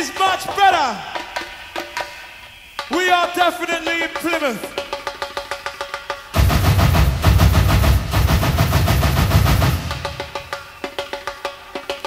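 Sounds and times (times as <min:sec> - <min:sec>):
techno dj mix: 0:00.0 - 0:01.5, 0:02.8 - 0:05.0
rapid hammering percussion: 0:00.0 - 0:12.0
heavy bass: 0:06.4 - 0:10.4.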